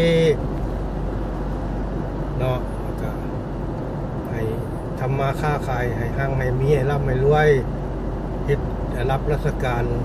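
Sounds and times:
road and engine noise in car: 0.0s - 10.0s
man speaking: 8.5s - 10.0s.

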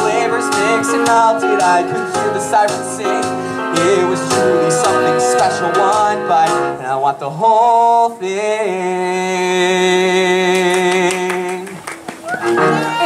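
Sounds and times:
person singing: 0.0s - 11.8s
instrumental backing music: 0.0s - 13.0s.

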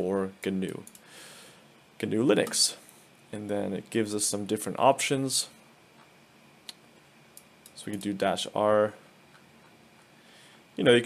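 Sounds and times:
man speaking: 2.0s - 2.8s, 10.8s - 11.0s.

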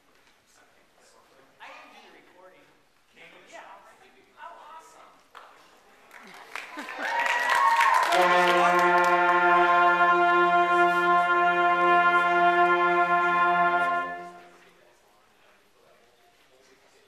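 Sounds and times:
concert band playing: 8.1s - 14.6s.

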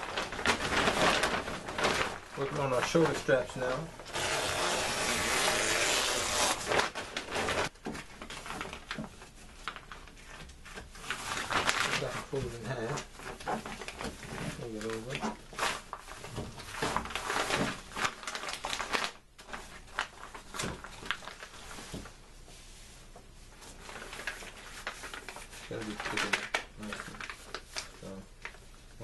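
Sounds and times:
tarp crinkling and rustling: 0.0s - 3.9s, 11.0s - 22.0s, 23.7s - 28.6s.

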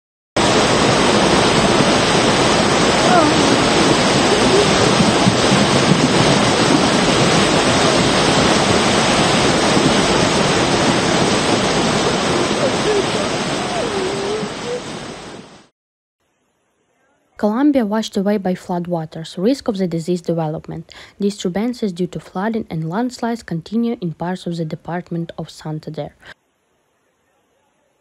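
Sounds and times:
flood torrent rushing: 0.4s - 15.7s.

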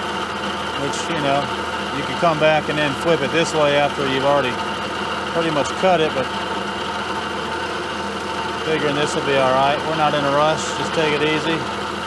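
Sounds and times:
milling machine cutting metal: 0.0s - 12.0s.

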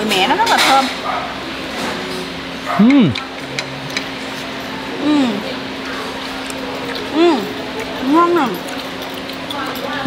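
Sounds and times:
low background hum: 0.0s - 10.0s
woman humming appreciatively: 2.8s - 3.2s, 5.0s - 5.5s.

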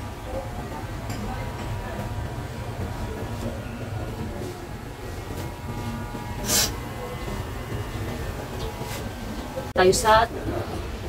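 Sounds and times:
electric hair clippers buzzing: 0.0s - 11.0s
short hissing burst: 6.4s - 6.8s.

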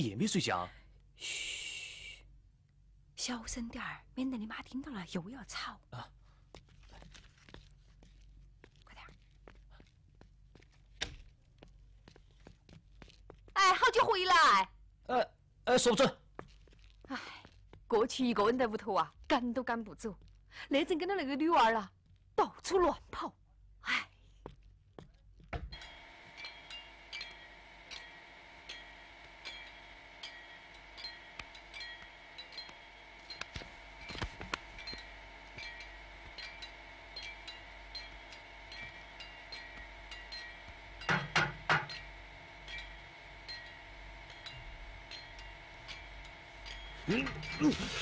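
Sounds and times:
steady ringing tone: 25.6s - 48.0s
hammering on metal: 40.7s - 42.1s
knocks: 41.1s - 42.0s.

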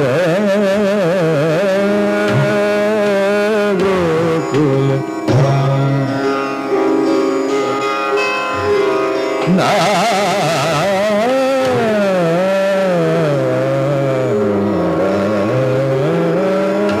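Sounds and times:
man singing: 0.0s - 6.3s, 9.5s - 17.0s.

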